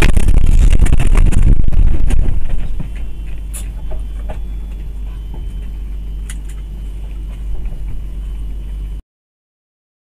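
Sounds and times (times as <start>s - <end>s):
truck engine and road rumble: 0.0s - 9.0s.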